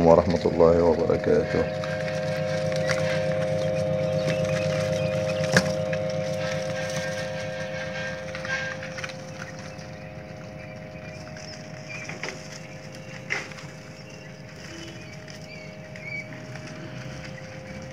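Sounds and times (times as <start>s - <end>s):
electric fan hum: 0.0s - 17.9s.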